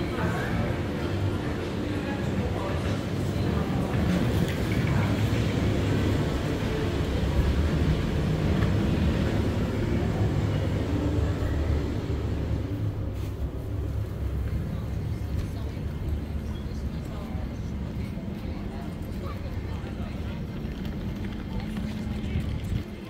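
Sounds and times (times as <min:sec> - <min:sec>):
city traffic rumble: 0:00.0 - 0:23.0
people talking: 0:00.0 - 0:23.0.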